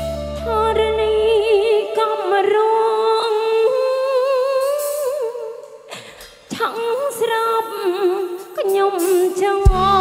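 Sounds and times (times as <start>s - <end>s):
woman singing into a microphone: 0.3s - 10.0s.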